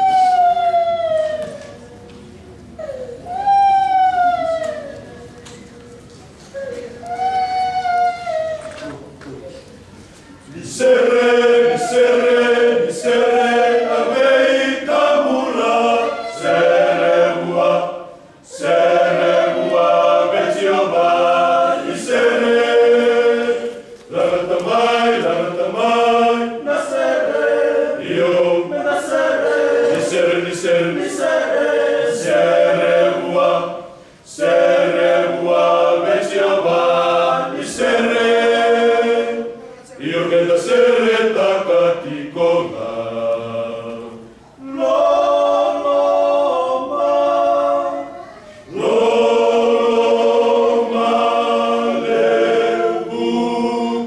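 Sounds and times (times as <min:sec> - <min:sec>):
men's choir singing a hymn: 0:10.4 - 0:48.1, 0:48.7 - 0:54.0.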